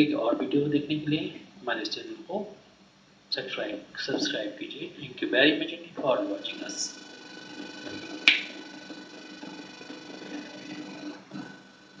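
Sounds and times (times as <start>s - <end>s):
low room hum: 0.0s - 12.0s
faint steady tones: 3.3s - 12.0s
sharp click: 7.9s - 8.6s.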